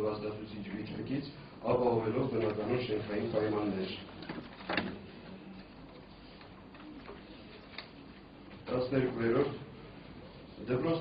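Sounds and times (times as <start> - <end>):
faint hall hiss: 0.0 - 11.0.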